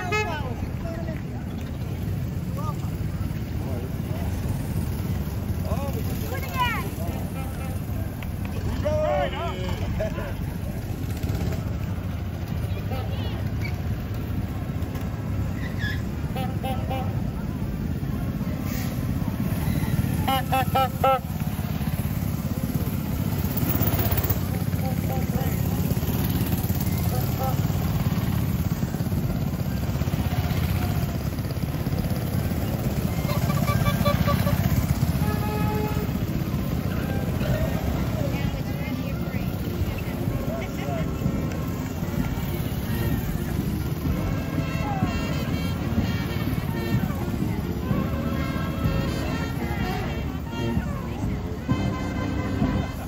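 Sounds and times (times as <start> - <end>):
small engines low rumble: 0.0 - 53.0.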